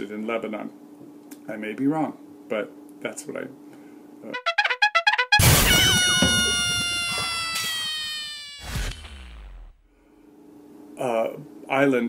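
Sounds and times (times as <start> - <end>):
held brass-like note sinking: 4.3 - 7.6
short burst: 5.4 - 9.8.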